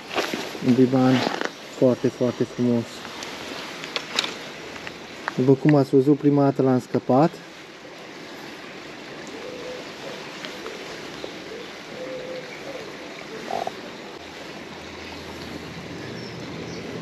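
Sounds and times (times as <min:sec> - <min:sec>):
flowing river water: 0:00.0 - 0:17.0
faint clicks and rustles: 0:02.9 - 0:05.9.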